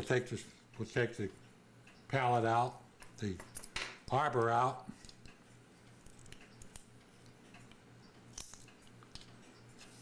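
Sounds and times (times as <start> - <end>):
steady low hum: 0.0 - 10.0
small clicks and taps of clock parts: 0.7 - 10.0.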